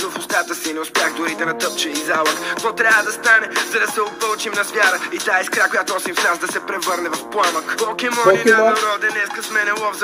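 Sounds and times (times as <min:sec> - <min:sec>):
man rapping over a hip-hop beat: 0:00.0 - 0:10.0.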